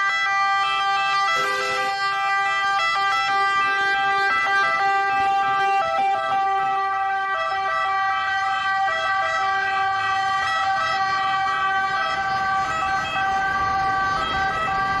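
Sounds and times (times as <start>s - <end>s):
ambulance siren: 0.0s - 15.0s
city traffic: 0.0s - 15.0s.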